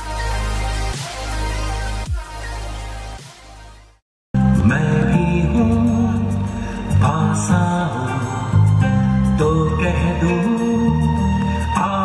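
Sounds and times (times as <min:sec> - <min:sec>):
song with steady beat: 0:00.0 - 0:12.0.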